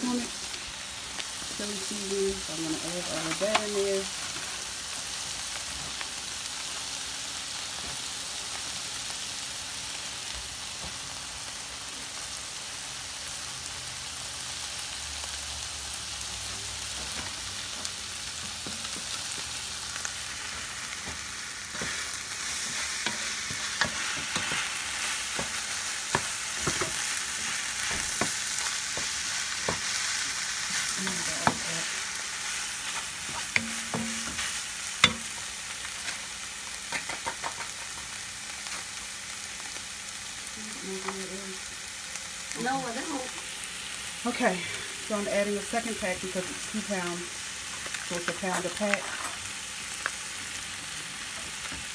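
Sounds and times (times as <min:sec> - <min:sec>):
meat sizzling in a skillet: 0:00.0 - 0:51.9
wooden spoon scraping a pan: 0:20.7 - 0:36.2.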